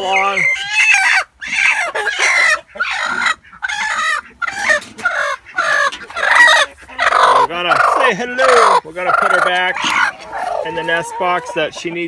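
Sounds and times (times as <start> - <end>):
hen squawking: 0.0 - 12.0.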